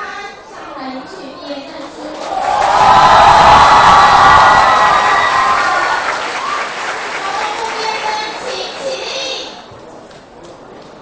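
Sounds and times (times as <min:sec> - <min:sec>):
crowd cheering and clapping: 0:02.1 - 0:09.1.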